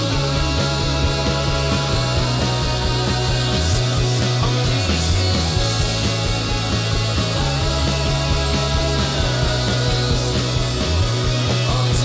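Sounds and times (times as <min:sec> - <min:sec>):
bass: 0:00.0 - 0:12.0
drum kit beat: 0:00.0 - 0:12.0
electric guitars: 0:00.0 - 0:12.0
keyboard: 0:00.0 - 0:12.0.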